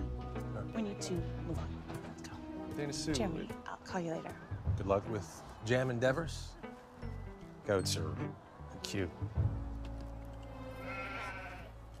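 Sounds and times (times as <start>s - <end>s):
goat bleating: 10.4s - 11.8s.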